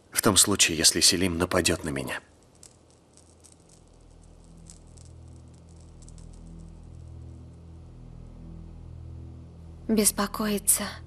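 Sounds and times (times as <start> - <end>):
faint rustling clicks: 2.2 - 7.2
low dramatic film score drone: 4.0 - 11.0.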